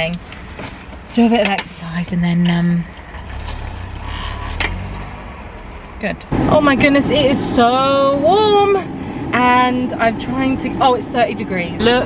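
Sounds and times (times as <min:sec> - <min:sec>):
car engine idling: 0:02.8 - 0:08.1.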